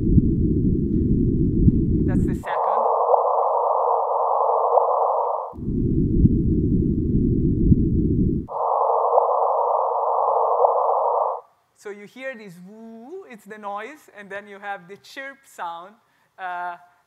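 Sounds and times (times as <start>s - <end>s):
hissing detector noise: 2.1s - 5.6s, 8.5s - 11.4s
rising chirp: 2.4s - 5.6s, 8.5s - 11.4s.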